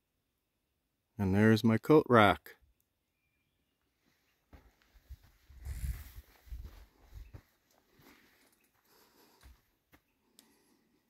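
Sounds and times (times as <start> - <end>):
footsteps: 4.0 - 10.1.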